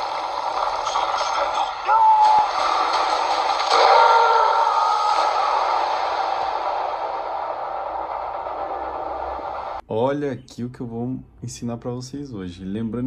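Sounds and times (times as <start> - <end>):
hissing swell with echo: 2.6 - 9.8.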